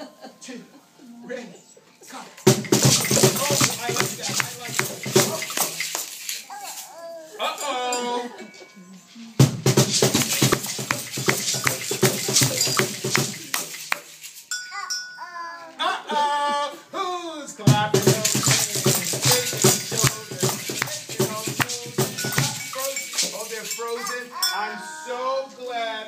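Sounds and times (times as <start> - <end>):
music: 0.0 - 6.4, 7.9 - 14.5, 17.6 - 23.8
maracas and rattles shaking: 2.2 - 15.1, 17.7 - 24.6
voice calling out: 24.0 - 25.4.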